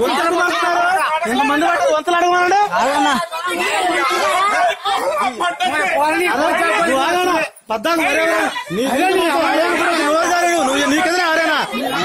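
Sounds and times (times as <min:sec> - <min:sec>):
people arguing over one another: 0:00.0 - 0:12.0.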